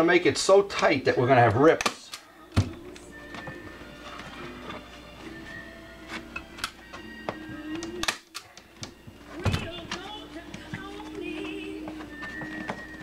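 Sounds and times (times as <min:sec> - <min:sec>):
faint background music: 0:00.0 - 0:13.0
staple gun snap: 0:07.7 - 0:08.9.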